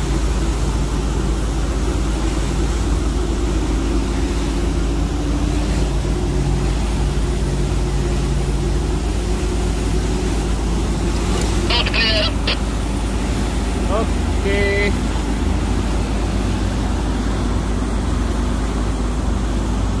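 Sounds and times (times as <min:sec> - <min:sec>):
boat engine rumble: 0:00.0 - 0:20.0
boat wash: 0:00.0 - 0:20.0
voices: 0:09.6 - 0:15.4.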